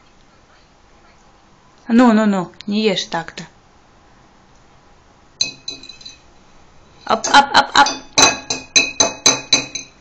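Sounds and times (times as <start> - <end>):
fork clinking on glass plate: 5.4 - 6.2, 7.8 - 10.0.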